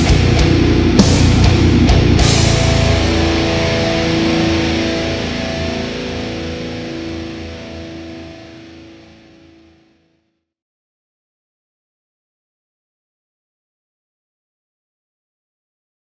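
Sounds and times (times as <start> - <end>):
electric guitar chord ringing: 0.0 - 10.3.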